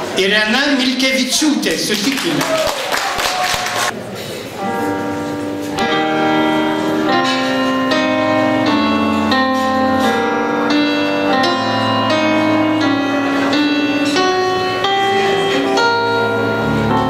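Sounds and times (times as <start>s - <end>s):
electronic keyboard piano chords: 4.4s - 17.0s.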